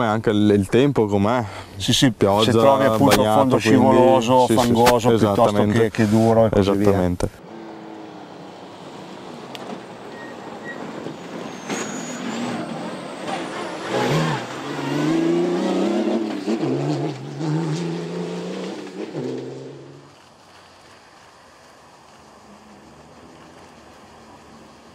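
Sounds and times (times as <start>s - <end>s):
racing car engine accelerating: 7.4s - 20.1s.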